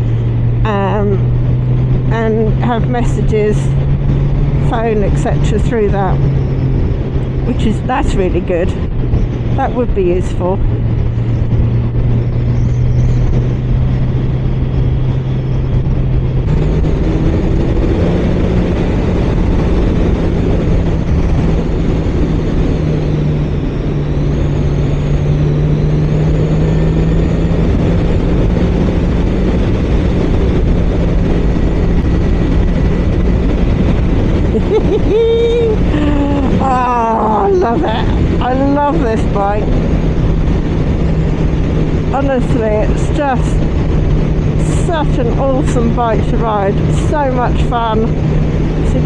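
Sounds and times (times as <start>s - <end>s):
motorcycle engine cruising: 0.0s - 49.0s
wind rush: 0.0s - 49.0s.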